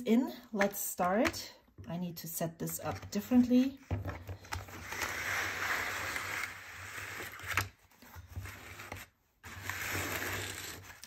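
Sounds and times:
pen case scraping on a mat: 8.3s - 11.0s.

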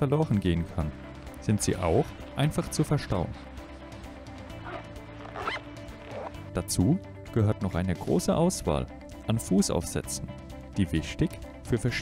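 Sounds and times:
background music with held notes: 0.0s - 12.0s
backpack zipper pulled: 4.4s - 6.5s.

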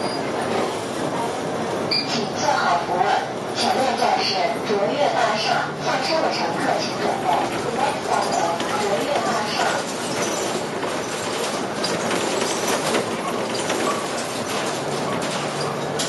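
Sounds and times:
bus engine and road noise: 0.0s - 16.0s.

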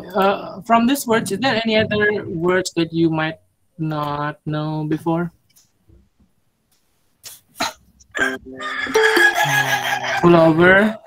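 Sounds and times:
person coughing: 7.6s - 7.8s.

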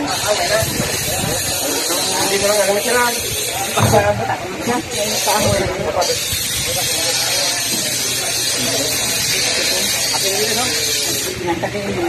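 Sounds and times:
machine buzzing hiss and hum: 0.0s - 11.5s
people talking: 0.0s - 12.0s.

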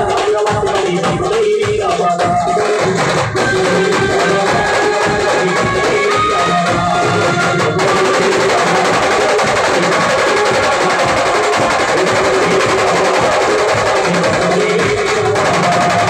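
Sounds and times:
fast drumming: 0.0s - 16.0s
held melody line: 0.0s - 16.0s.

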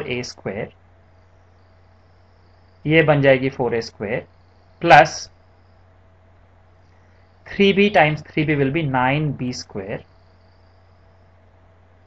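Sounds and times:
man's voice: 0.0s - 0.7s, 2.9s - 4.2s, 4.8s - 5.3s, 7.5s - 10.0s
light hiss: 0.0s - 12.0s
low hum: 0.0s - 12.0s
thin steady tone: 0.0s - 12.0s.

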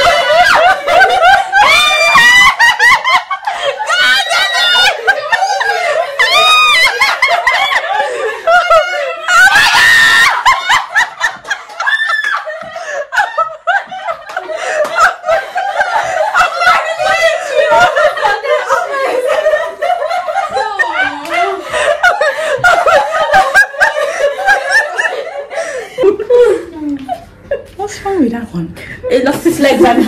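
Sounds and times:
woman laughing: 0.0s - 27.9s
woman screaming: 3.8s - 7.0s, 8.8s - 10.5s.

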